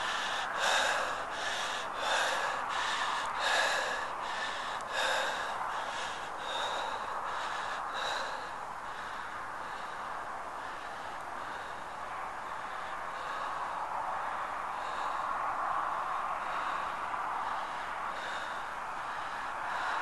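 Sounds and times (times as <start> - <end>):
man gasping for breath: 0.0 - 11.9.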